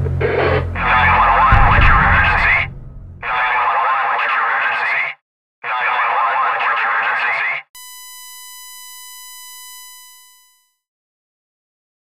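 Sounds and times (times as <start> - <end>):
buzzy electronic tone: 0.2 - 3.4
dense noisy wash: 0.6 - 3.6.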